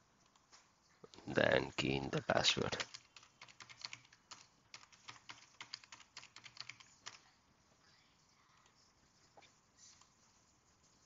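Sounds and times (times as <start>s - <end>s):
keyboard typing: 2.6s - 7.3s.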